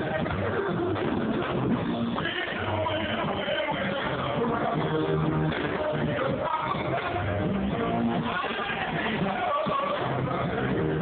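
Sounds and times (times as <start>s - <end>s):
gospel band playing: 0.0s - 11.0s.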